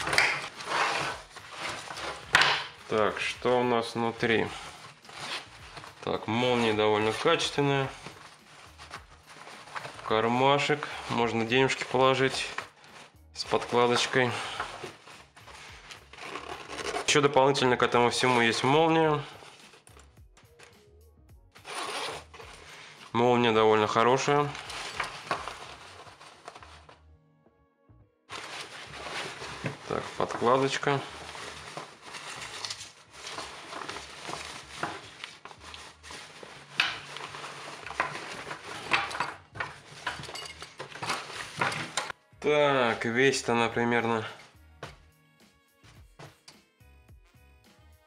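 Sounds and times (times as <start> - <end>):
fabric bag rustling: 0.0 - 17.3, 21.6 - 27.0, 28.3 - 42.2
faint background music: 0.0 - 48.0.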